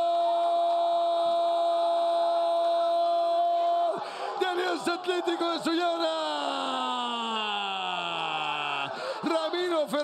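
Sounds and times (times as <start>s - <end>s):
commentator rapid talk: 4.1s - 10.0s
commentator shouting goal: 4.4s - 8.6s.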